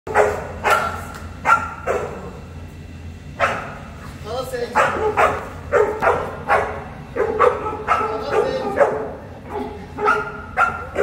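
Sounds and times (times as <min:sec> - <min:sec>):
large dog barking: 0:00.1 - 0:02.4, 0:03.4 - 0:03.8, 0:04.7 - 0:11.0.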